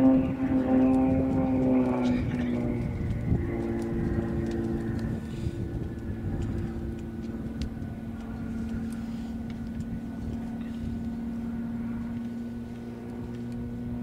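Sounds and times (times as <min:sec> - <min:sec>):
propeller aircraft droning overhead: 0:00.0 - 0:14.0.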